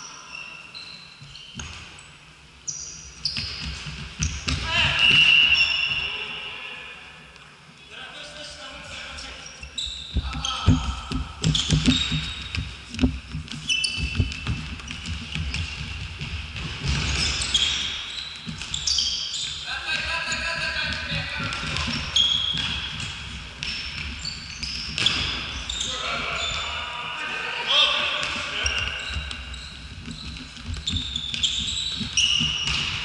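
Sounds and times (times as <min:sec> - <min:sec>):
shoes squeaking on floor: 0:00.0 - 0:06.4, 0:09.2 - 0:27.0, 0:27.8 - 0:33.0
ball kicked and bouncing: 0:01.2 - 0:02.0, 0:03.2 - 0:05.2, 0:10.1 - 0:25.8, 0:28.2 - 0:33.0.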